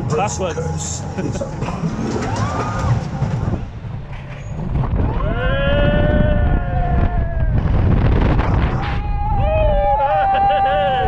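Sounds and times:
roller coaster rumble: 0:00.0 - 0:11.0
wind rushing: 0:01.6 - 0:10.1
people screaming: 0:02.1 - 0:03.2, 0:05.0 - 0:07.8, 0:08.7 - 0:11.0.

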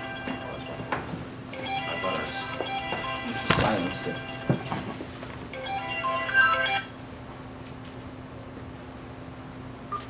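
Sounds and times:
electronic melodic tone: 0:00.0 - 0:00.9, 0:01.5 - 0:04.8, 0:05.5 - 0:07.0.

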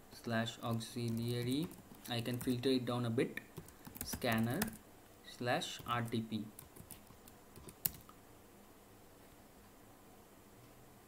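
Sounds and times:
computer keyboard keystrokes: 0:00.7 - 0:02.6, 0:03.6 - 0:04.8, 0:05.8 - 0:08.1.

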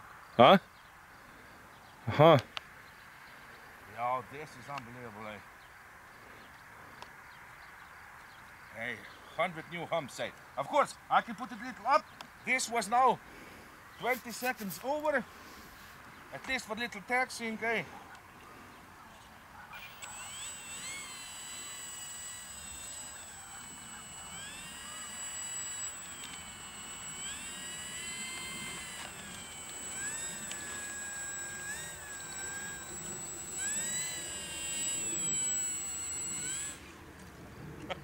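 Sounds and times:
model plane electric motor whining: 0:19.8 - 0:37.1.

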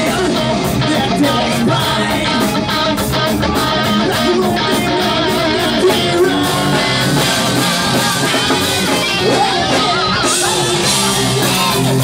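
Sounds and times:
electric guitar: 0:00.0 - 0:12.0
hard rock band playing: 0:00.0 - 0:12.0.

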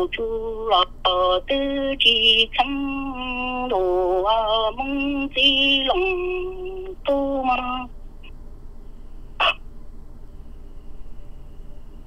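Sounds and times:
faint background hiss: 0:00.0 - 0:12.0
short sharp vocal sound: 0:09.4 - 0:09.6.

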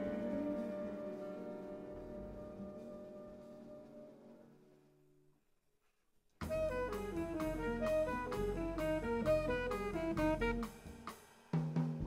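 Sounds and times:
jazz band playing: 0:00.0 - 0:04.1, 0:06.4 - 0:11.2
drum kit with snare and cymbals: 0:06.4 - 0:12.0.

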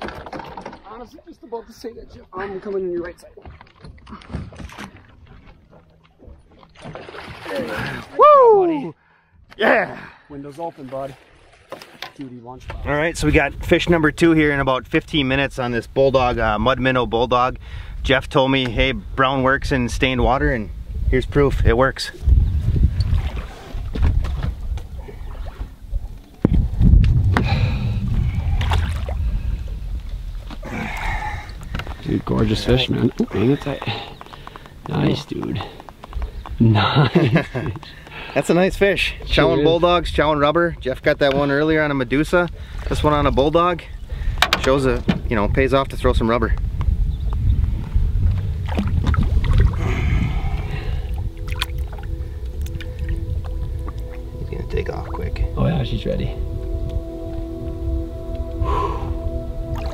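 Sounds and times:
water sloshing and splashing: 0:00.0 - 0:01.7, 0:02.4 - 0:08.2, 0:10.4 - 0:12.4, 0:22.7 - 0:36.4, 0:48.3 - 0:55.5, 0:59.6 - 0:59.9
water splashing from fish: 0:03.4 - 0:08.2, 0:23.0 - 0:25.8, 0:28.2 - 0:29.5, 0:48.6 - 0:53.2
knocks and bumps on boat: 0:23.2 - 0:24.9, 0:44.4 - 0:45.5
low rumble: 0:24.3 - 0:33.3, 0:45.1 - 0:59.9.

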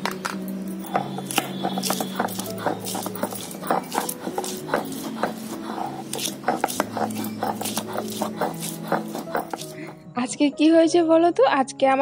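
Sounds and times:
stone grinding on stone: 0:00.8 - 0:10.0.

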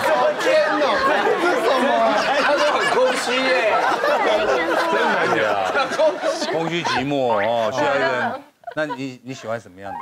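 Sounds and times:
several voices talking over each other: 0:00.0 - 0:10.0.

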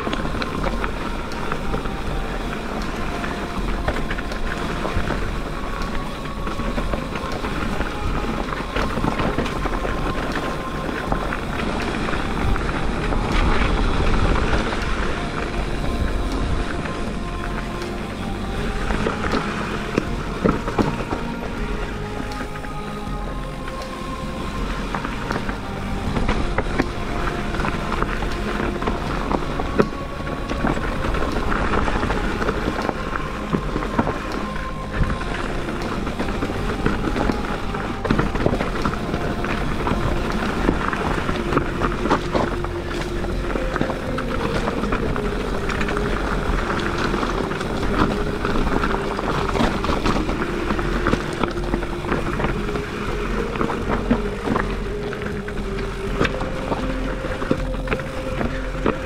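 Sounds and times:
background music with held notes: 0:00.0 - 0:59.0
bike rolling on rocky trail: 0:00.0 - 0:59.0
wind on microphone: 0:00.0 - 0:59.0.

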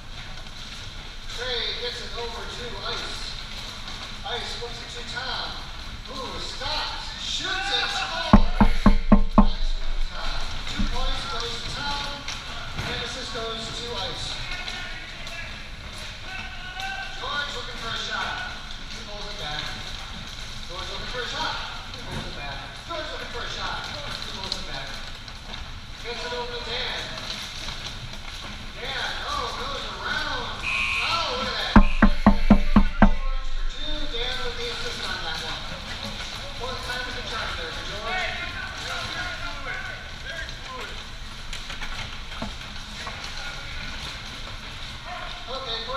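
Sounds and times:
loud knocks: 0:08.3 - 0:11.5, 0:31.8 - 0:34.9
people talking and calling out: 0:30.6 - 0:36.5.

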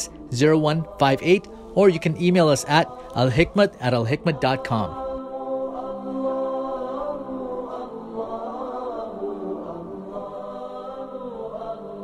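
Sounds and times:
voices chanting long held notes: 0:00.0 - 0:12.0.

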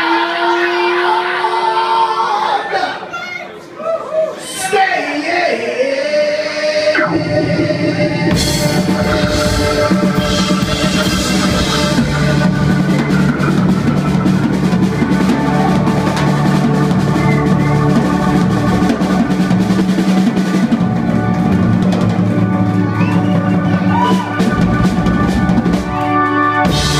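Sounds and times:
electric guitars holding chords: 0:06.8 - 0:26.9
drum fills: 0:06.9 - 0:26.9.

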